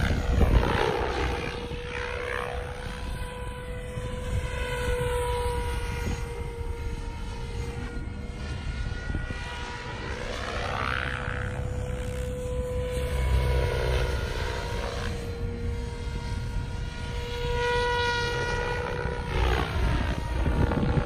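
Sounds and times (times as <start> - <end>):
rc helicopter drive whine: 0.0 - 21.0
rotor blades rushing: 0.0 - 21.0.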